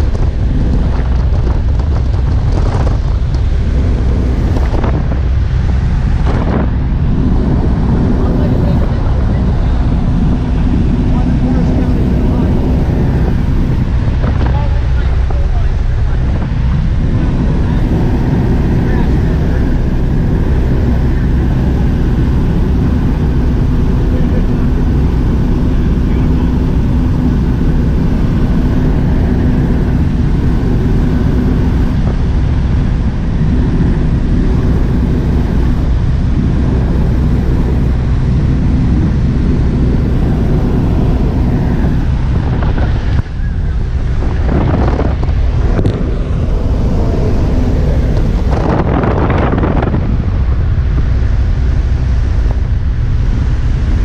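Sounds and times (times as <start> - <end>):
light airplane engine drone: 0.0 - 54.0
wind noise on microphone: 0.0 - 54.0.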